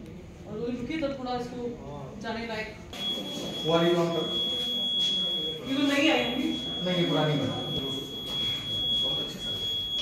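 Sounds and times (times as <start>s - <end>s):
faint room murmur: 0.0s - 10.0s
high-pitched electronic tone: 3.0s - 10.0s.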